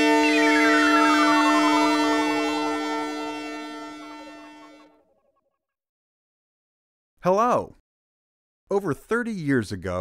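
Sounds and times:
synthesizer jingle with sliding tone: 0.0s - 4.9s.

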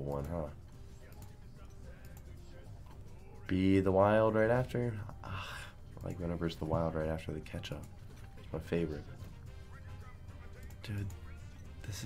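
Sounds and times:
quiet background game music: 0.0s - 12.0s.

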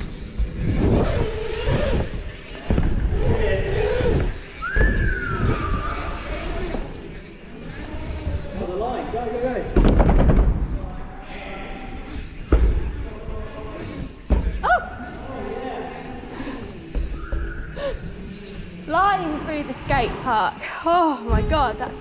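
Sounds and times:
bike rattling rush: 0.0s - 22.0s
tyres thumping on ramps: 9.7s - 10.7s.

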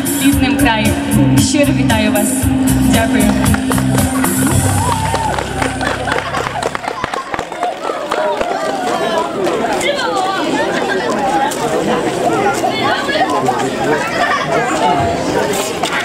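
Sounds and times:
backing music: 0.0s - 8.0s
crowd chatter: 0.0s - 16.0s.

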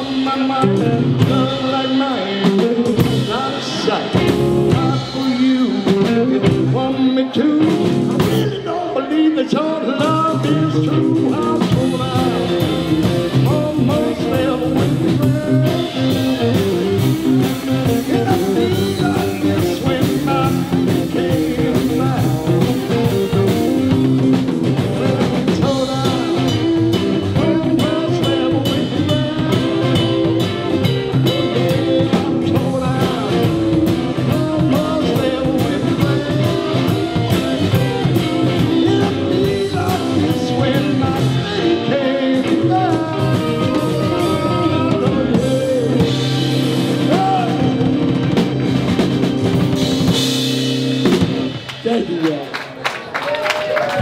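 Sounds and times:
man singing into microphone: 0.0s - 47.9s
rock and roll band playing: 0.0s - 54.0s.

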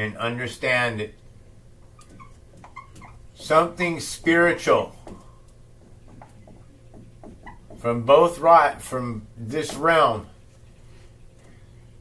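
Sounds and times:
marker squeaking on whiteboard: 1.8s - 4.0s, 5.0s - 7.9s.

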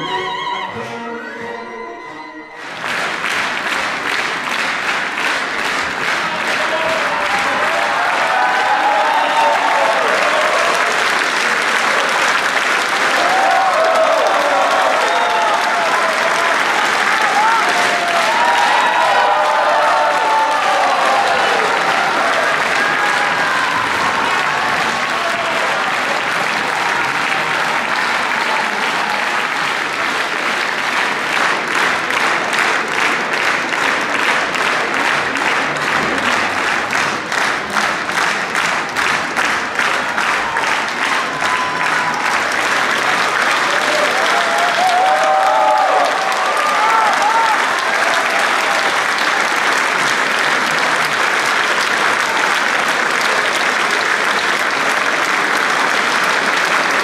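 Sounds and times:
audience applauding: 2.4s - 57.0s.

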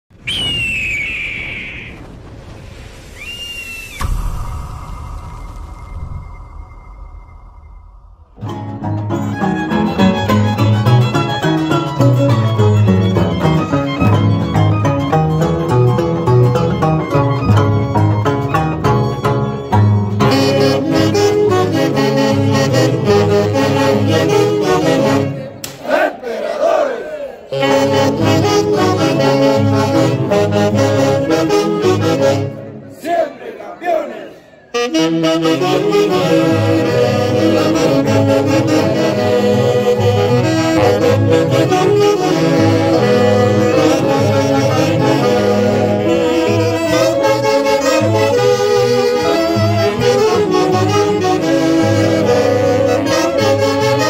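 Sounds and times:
high whistling tone sliding down: 0.1s - 9.0s
low rumble: 2.0s - 9.2s
saxophone band playing: 8.4s - 25.6s, 27.4s - 32.9s, 34.7s - 54.0s.

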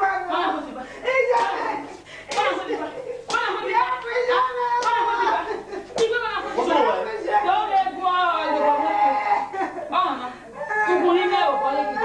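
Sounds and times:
sharp hand slaps: 2.3s - 2.6s, 3.3s - 3.5s, 4.8s - 5.1s, 6.0s - 6.2s.

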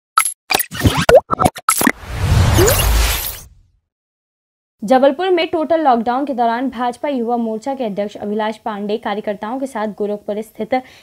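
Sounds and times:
short electronic blips: 0.2s - 3.5s.

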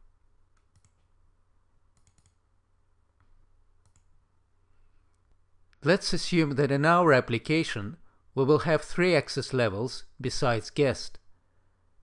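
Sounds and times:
computer mouse clicks: 0.5s - 1.1s, 1.9s - 2.4s, 3.2s - 4.1s.

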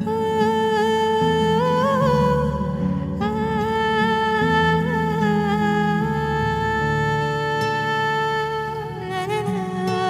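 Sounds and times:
hummed melody: 0.0s - 10.0s.

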